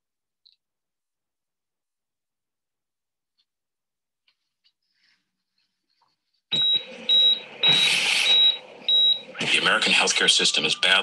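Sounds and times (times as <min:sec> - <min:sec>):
heart monitor beeps: 0:06.5 - 0:09.4
loud hiss: 0:07.7 - 0:08.4.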